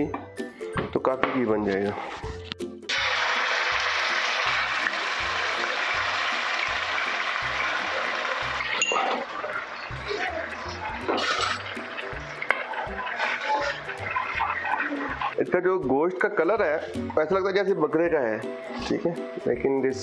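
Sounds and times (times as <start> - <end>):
background music with beat: 0.0 - 2.9
meat sizzling in hot oil: 2.9 - 15.4
spatula clinking on pan: 8.7 - 9.3.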